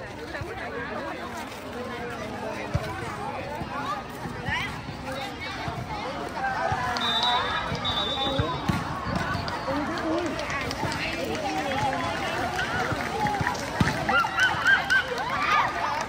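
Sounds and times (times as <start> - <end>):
young voices talking and calling: 0.0 - 16.0.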